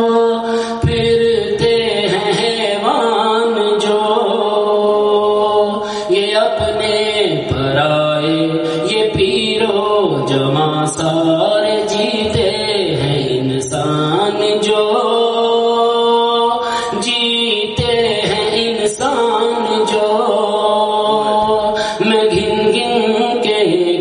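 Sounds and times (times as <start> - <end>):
man singing devotional recitation: 0.0 - 24.0.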